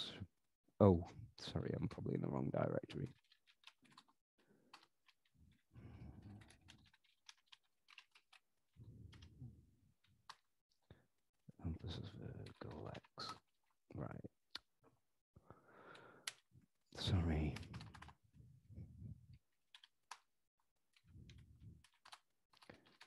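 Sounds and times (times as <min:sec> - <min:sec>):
computer keyboard typing: 0:06.3 - 0:08.4, 0:17.6 - 0:18.1, 0:21.8 - 0:23.0.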